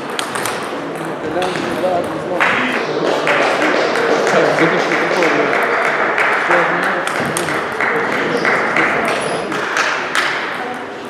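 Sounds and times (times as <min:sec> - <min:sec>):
table tennis ball clicking: 0:00.1 - 0:01.8
background voices: 0:00.6 - 0:10.0.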